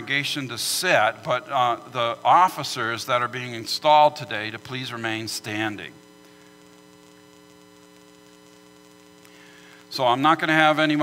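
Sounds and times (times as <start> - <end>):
man speaking: 0.0 - 6.0, 9.9 - 11.0
electrical mains hum: 0.0 - 11.0.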